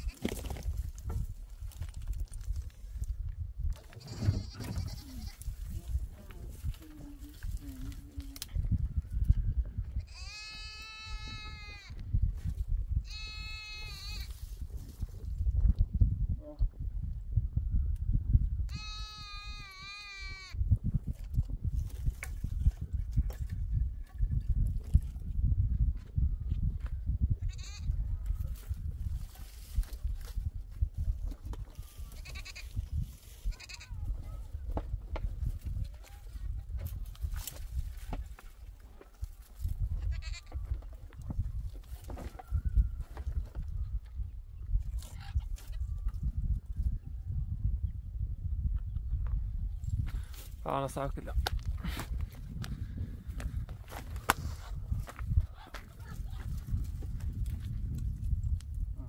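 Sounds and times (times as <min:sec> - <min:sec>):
livestock bleating: 0:04.0 - 0:05.4, 0:10.0 - 0:12.0, 0:13.0 - 0:14.3, 0:18.7 - 0:20.6, 0:27.4 - 0:27.9, 0:32.1 - 0:32.7, 0:33.5 - 0:34.0, 0:40.0 - 0:40.5.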